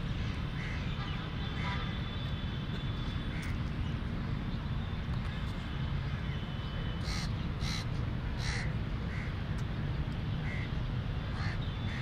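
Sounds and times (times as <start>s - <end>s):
crows cawing: 7.0s - 9.3s, 11.4s - 12.0s.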